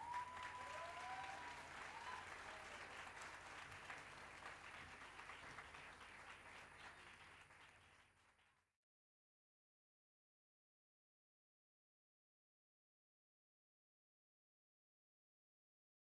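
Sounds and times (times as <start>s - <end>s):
audience applauding: 0.0s - 8.6s.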